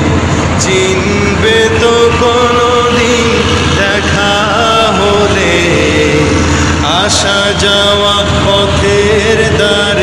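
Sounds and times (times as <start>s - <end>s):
boat engine running: 0.0s - 10.0s
men singing long notes: 0.0s - 10.0s.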